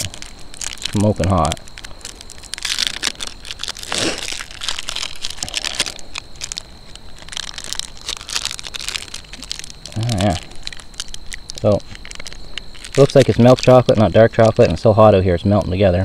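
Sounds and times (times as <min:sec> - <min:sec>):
wrapper crinkling and tearing: 0:00.0 - 0:14.8.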